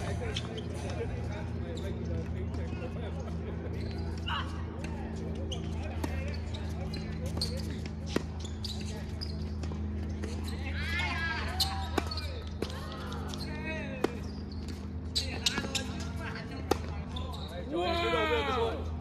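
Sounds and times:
voices: 0.0 - 19.0.

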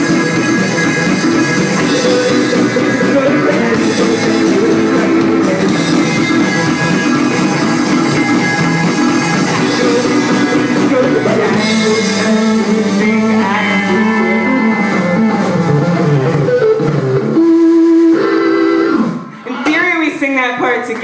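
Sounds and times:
garage rock band playing: 0.0 - 21.0.

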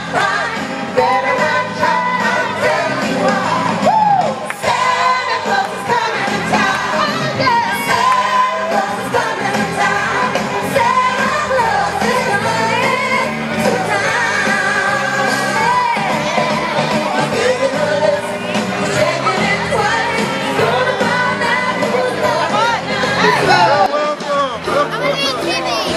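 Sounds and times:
music with singing: 0.0 - 25.9.

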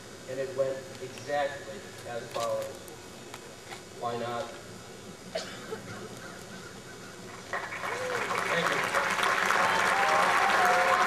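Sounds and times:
crowd applauding: 7.4 - 11.0
people cheering: 7.5 - 11.0.

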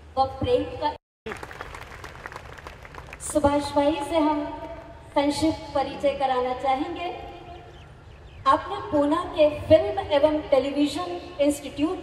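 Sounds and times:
audience applause: 1.3 - 3.2.

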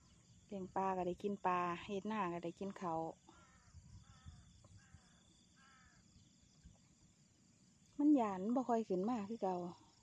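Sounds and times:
faint distant bird calls: 0.0 - 10.0.

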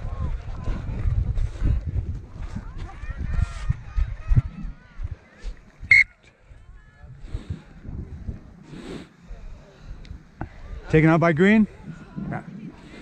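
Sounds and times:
wind rumble: 0.0 - 10.9
faint distant voices: 2.3 - 13.0
referee's whistle blast: 5.9 - 6.2.

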